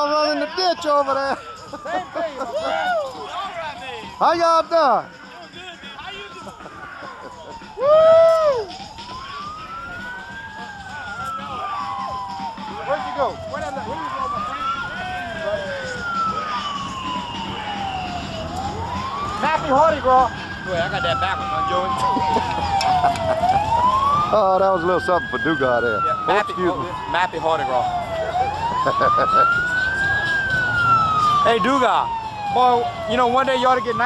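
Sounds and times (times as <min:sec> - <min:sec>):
siren wailing: 0:00.0 - 0:34.0.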